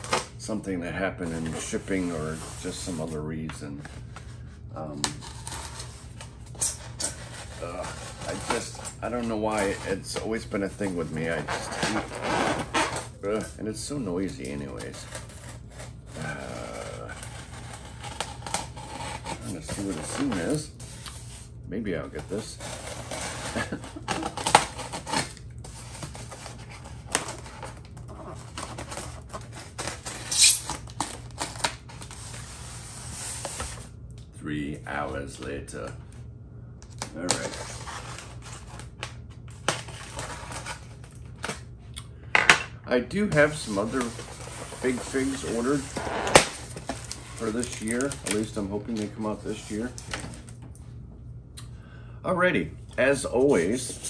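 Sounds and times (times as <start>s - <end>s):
packing tape peeling crackle: 22.8s - 32.2s, 43.7s - 50.5s
styrofoam lid squeaking: 30.1s - 31.0s, 44.0s - 48.4s.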